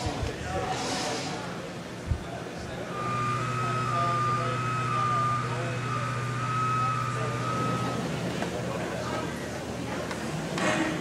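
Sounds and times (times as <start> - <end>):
background chatter: 0.0 - 11.0
machine running with low hum: 2.1 - 10.7.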